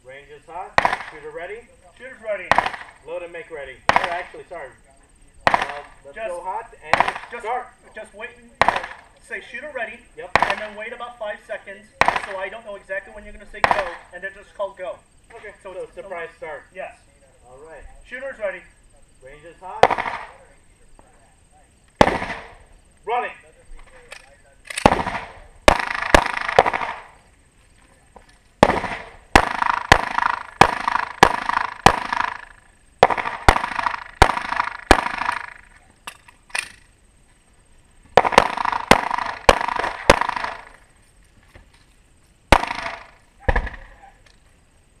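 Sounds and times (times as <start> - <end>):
pistol shots with echo: 0.8 - 1.3, 2.4 - 3.0, 3.8 - 4.5, 5.4 - 6.0, 6.8 - 7.4, 8.6 - 9.1, 10.2 - 10.8, 12.0 - 12.6, 13.5 - 14.1, 19.8 - 20.5, 22.0 - 22.7, 24.1 - 27.2, 28.6 - 36.7, 38.2 - 40.8, 42.5 - 44.0.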